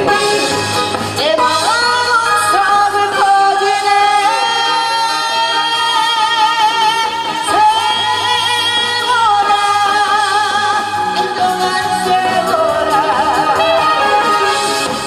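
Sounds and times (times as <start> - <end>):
musical accompaniment: 0.0 - 15.0
woman singing into a microphone: 1.2 - 15.0.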